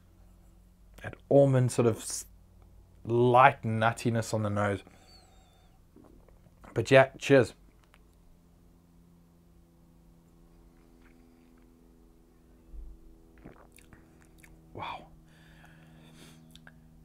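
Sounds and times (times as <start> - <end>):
steady low hum: 0.0 - 17.0
lip smacks and clicks: 13.4 - 14.6, 16.5 - 16.8.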